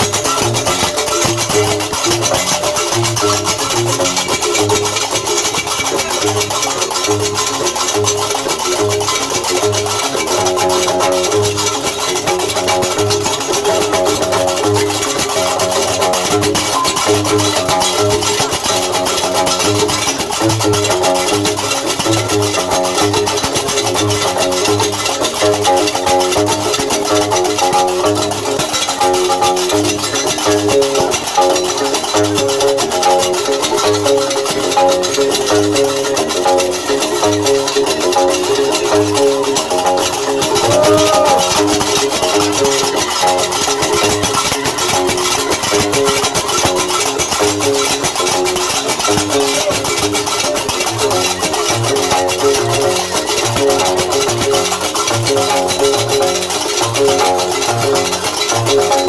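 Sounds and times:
metallic castanets clattering: 0:00.0 - 0:59.0
plucked bass lute: 0:00.0 - 0:59.0.

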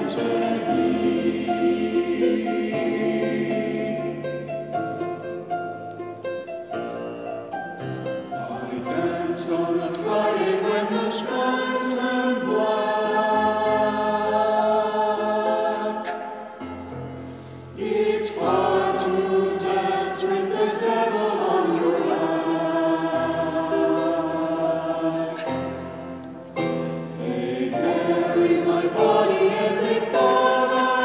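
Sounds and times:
choir singing sustained chords: 0:00.0 - 0:05.8, 0:07.5 - 0:31.0.

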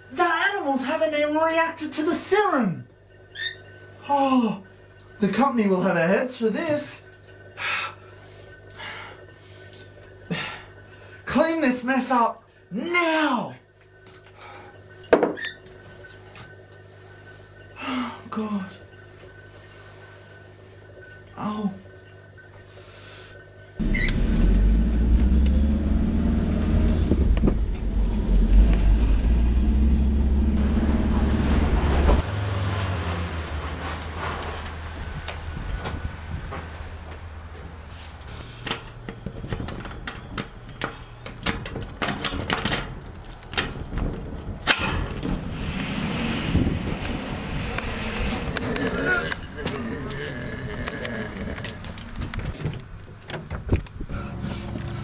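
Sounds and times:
faint room hum: 0:00.0 - 0:31.8.

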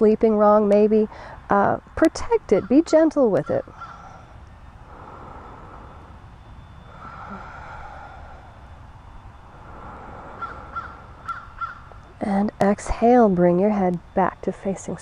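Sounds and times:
steady low rumble: 0:00.0 - 0:15.0
birds calling: 0:02.4 - 0:08.6, 0:09.4 - 0:12.2.

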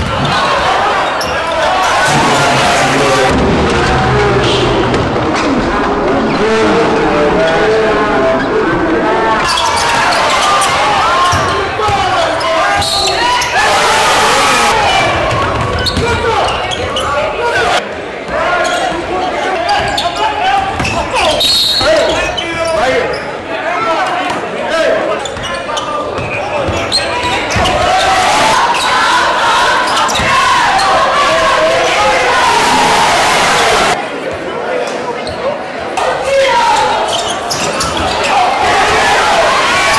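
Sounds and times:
players and spectators talking: 0:00.0 - 0:39.9
basketball bouncing on gym floor: 0:15.1 - 0:16.3.

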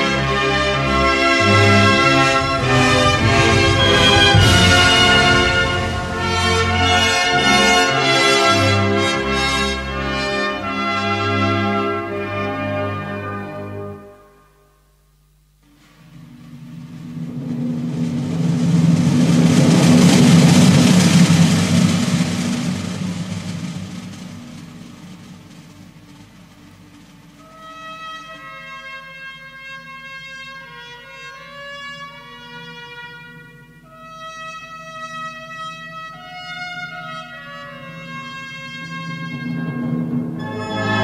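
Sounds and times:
military band music: 0:00.0 - 0:14.3, 0:16.4 - 0:41.0
sustained brass chords: 0:00.0 - 0:14.8, 0:24.8 - 0:41.0.

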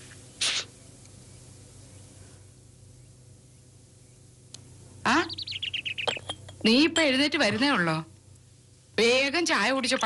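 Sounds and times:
bird chirping: 0:05.1 - 0:06.6.

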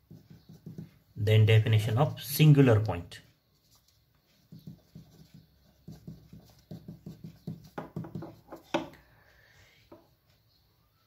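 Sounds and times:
pen writing on paper: 0:00.0 - 0:01.1, 0:04.4 - 0:08.7.

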